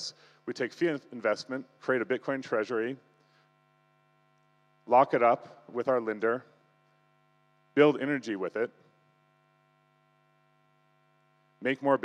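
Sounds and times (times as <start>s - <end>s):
man talking: 0.0s - 3.0s, 4.9s - 6.5s, 7.8s - 8.7s, 11.6s - 12.0s
faint electrical hum: 0.0s - 12.0s.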